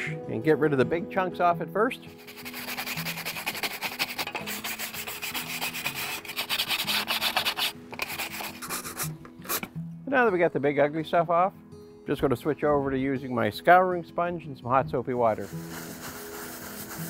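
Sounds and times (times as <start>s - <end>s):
brush scrubbing metal: 2.2s - 9.7s, 15.4s - 17.0s.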